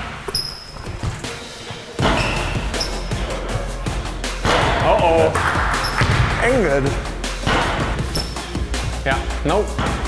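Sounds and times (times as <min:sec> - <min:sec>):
background music: 0:00.0 - 0:10.0
basketball bouncing on wooden floor: 0:04.4 - 0:06.4, 0:07.4 - 0:08.4.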